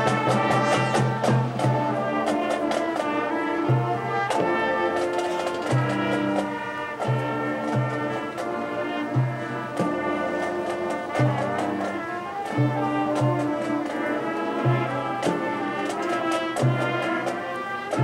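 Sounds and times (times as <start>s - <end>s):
low brass notes: 0.0s - 18.0s
marching band playing: 0.0s - 18.0s.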